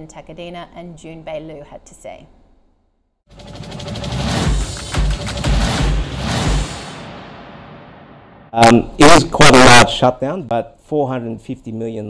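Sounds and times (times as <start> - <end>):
deep bass hits: 3.3 - 8.6
music whoosh: 3.3 - 8.7.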